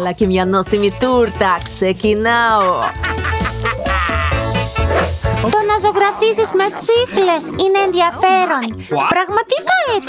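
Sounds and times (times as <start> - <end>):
upbeat music with bass beat: 0.3 - 10.0
warbling comic sound effect: 3.6 - 8.5.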